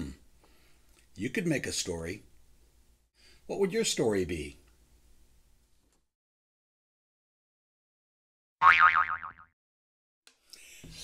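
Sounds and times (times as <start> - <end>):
cartoon boing spring effect: 8.6 - 9.5.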